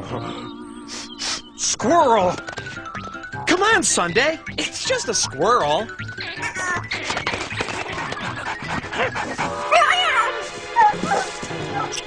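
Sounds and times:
background music: 0.0s - 12.0s
cartoon dog yelping: 6.2s - 8.2s.

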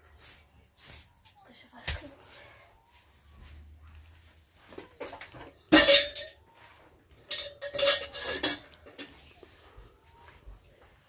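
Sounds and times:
metallic clinks of pots: 5.0s - 6.5s, 7.1s - 9.2s.

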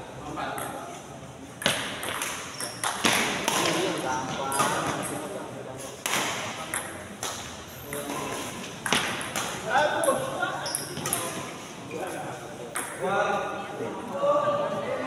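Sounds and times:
rackets hitting shuttlecock: 1.6s - 5.2s, 6.0s - 9.8s, 10.8s - 11.5s.

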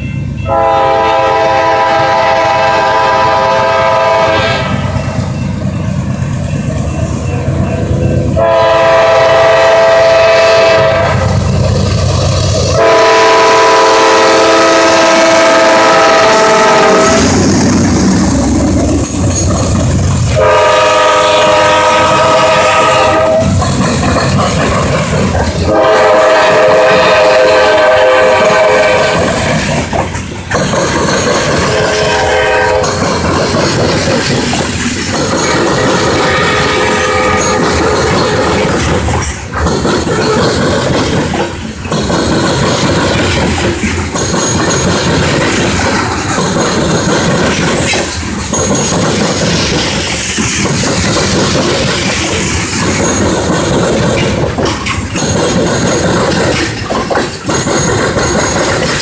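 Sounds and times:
freight cars rumbling on rails: 0.0s - 59.0s
locomotive horn blasts: 0.4s - 4.9s, 8.3s - 11.3s, 12.7s - 17.3s, 20.3s - 23.6s, 25.7s - 29.4s, 31.6s - 33.0s, 35.7s - 38.6s.

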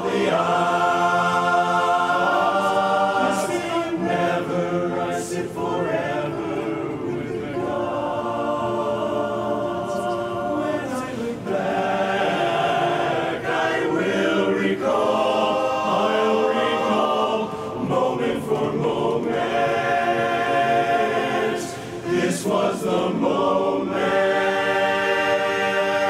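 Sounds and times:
male chorus singing a cappella: 0.0s - 26.0s.

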